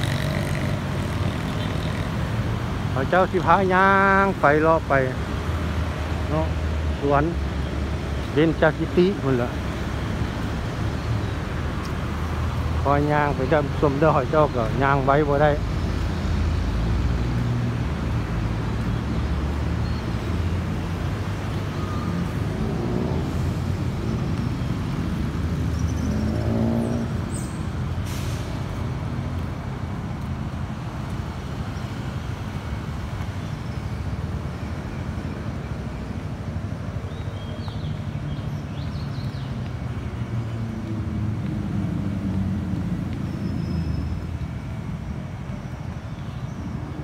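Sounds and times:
road traffic rumble: 0:00.0 - 0:47.0.

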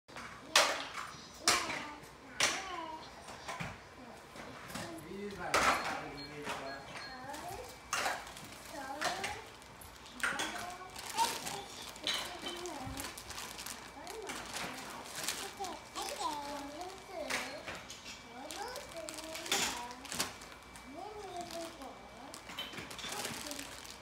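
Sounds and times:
toddler babbling: 0:01.4 - 0:03.5, 0:15.3 - 0:17.6, 0:18.3 - 0:20.0.

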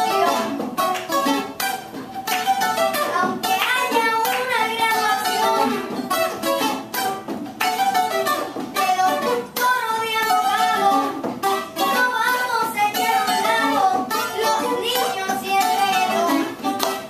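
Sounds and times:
acoustic guitar: 0:00.0 - 0:17.0
person singing: 0:03.0 - 0:06.2, 0:08.7 - 0:11.2, 0:11.8 - 0:17.0.

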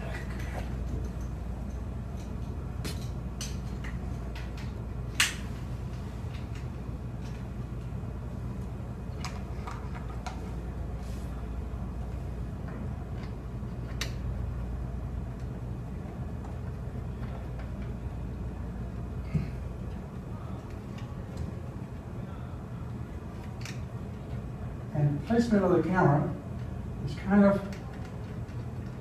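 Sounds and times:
low room hum: 0:00.0 - 0:29.0.

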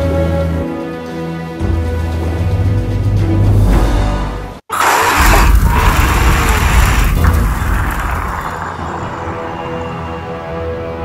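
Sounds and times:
background music sustained tones: 0:08.6 - 0:11.0.

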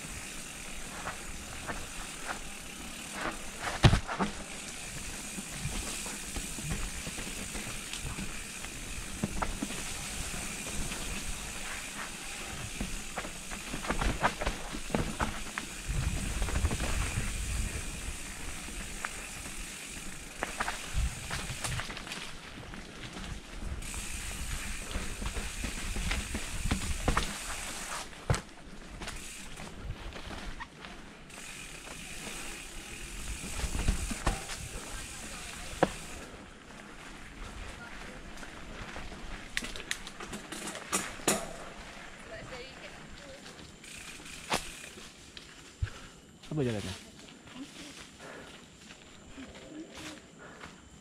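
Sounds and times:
bike knocking and rattling: 0:00.0 - 0:46.1
bike tyres hissing on dirt: 0:00.0 - 0:51.0.

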